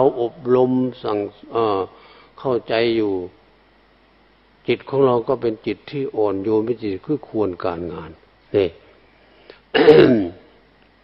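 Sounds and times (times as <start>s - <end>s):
man clearing his throat: 9.7s - 10.5s.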